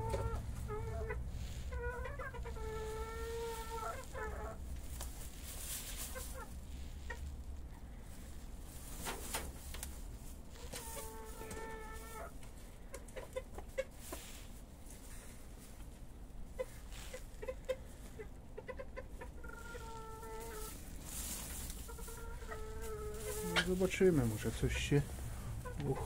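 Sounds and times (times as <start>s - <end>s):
chicken drawn-out call: 0.0s - 4.7s, 10.5s - 12.4s, 16.6s - 26.0s
chicken clucks: 0.0s - 9.6s, 10.5s - 26.0s.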